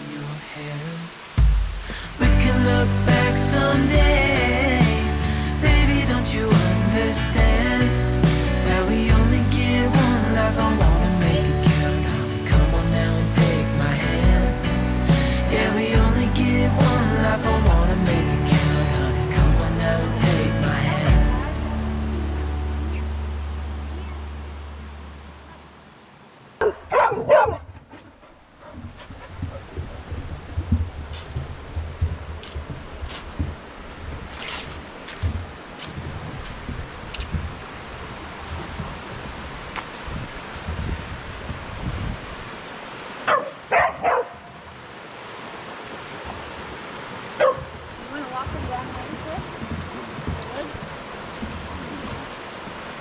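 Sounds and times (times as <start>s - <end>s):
creek rushing over rocks: 0.0s - 27.5s, 28.5s - 53.0s
dog barking: 26.6s - 28.0s, 43.3s - 44.5s, 47.4s - 47.7s.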